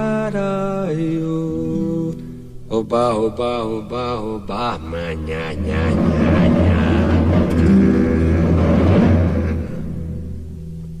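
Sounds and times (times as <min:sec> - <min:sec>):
person singing held phrases: 0:03.8 - 0:07.4.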